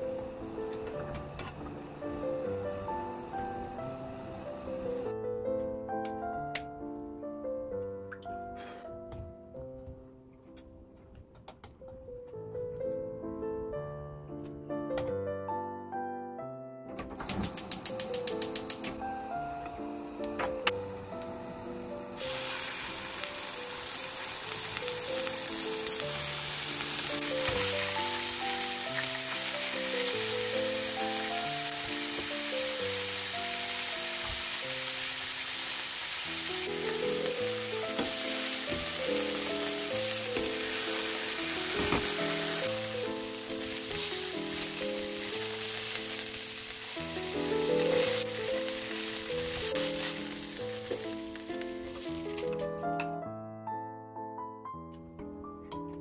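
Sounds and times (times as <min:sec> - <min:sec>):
background music: 0:00.0 - 0:56.0
chicken sizzling in a frying pan: 0:22.2 - 0:52.6.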